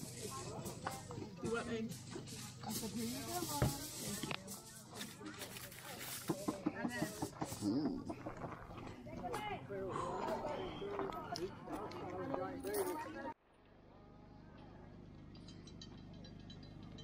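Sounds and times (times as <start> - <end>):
people talking in background: 0.0 - 15.1.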